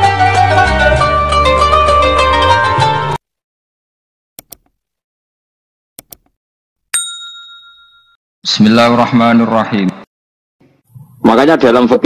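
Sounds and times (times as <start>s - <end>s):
mouse double-click: 6.0s - 6.4s
notification bell ding: 7.0s - 8.2s.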